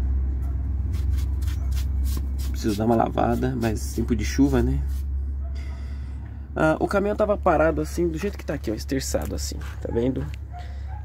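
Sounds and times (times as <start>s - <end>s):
cloth rubbing metal: 0.9s - 5.1s.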